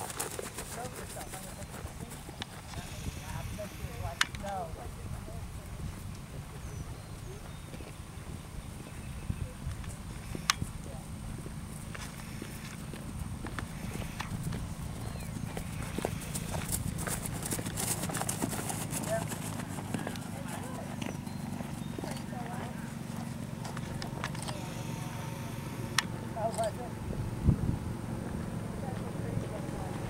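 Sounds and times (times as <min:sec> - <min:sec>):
horse trotting on grass: 0:00.0 - 0:06.6, 0:09.7 - 0:24.8, 0:28.2 - 0:30.0
faint voices: 0:00.0 - 0:30.0
steady low rumble: 0:21.6 - 0:30.0.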